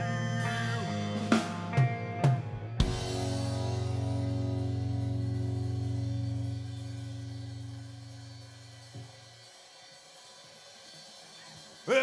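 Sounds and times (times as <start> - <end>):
guitar and drums crashing in: 1.0 - 8.0.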